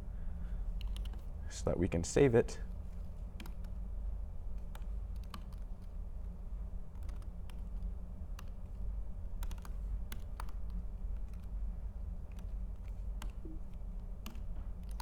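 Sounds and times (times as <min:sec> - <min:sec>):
steady low hum: 0:00.0 - 0:15.0
computer keyboard typing: 0:00.8 - 0:01.3, 0:03.4 - 0:03.8, 0:04.6 - 0:05.8, 0:06.9 - 0:08.7, 0:09.4 - 0:11.6, 0:12.3 - 0:15.0.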